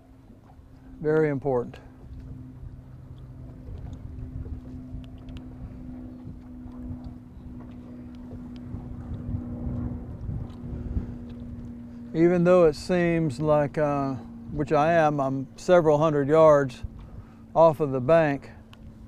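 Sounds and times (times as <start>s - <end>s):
wind buffeting microphone: 0.0s - 19.0s.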